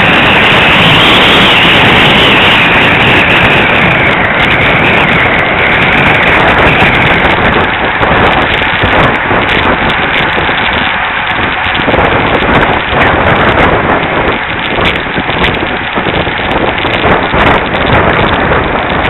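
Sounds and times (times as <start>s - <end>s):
tyre and road noise: 0.0s - 19.0s
wind buffeting microphone: 0.0s - 19.0s.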